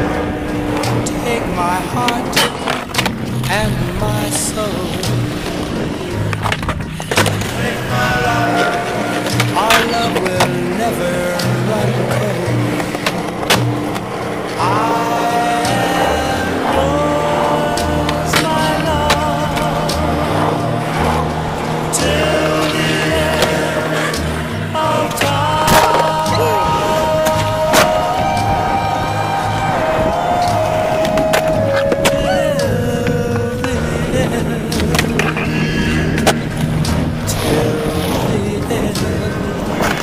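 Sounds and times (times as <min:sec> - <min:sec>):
skateboard clacks: 0:00.0 - 0:40.0
skateboard wheels rolling on concrete: 0:00.0 - 0:40.0
song with singing and bass: 0:00.0 - 0:40.0.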